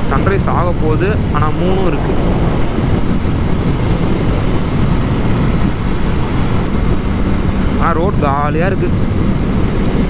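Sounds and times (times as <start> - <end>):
wind rush: 0.0 - 10.0
motorcycle engine: 1.0 - 7.7.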